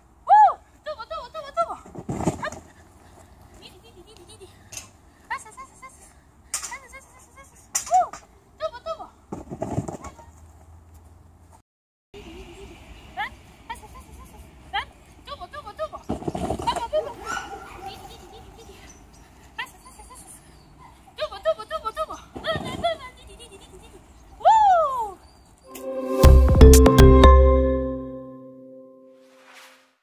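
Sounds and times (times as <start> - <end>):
woman calling encouragement: 6.7 - 9.2, 21.2 - 23.1
dog barking: 17.0 - 18.4
woman's high-pitched wordless calls: 19.6 - 25.2.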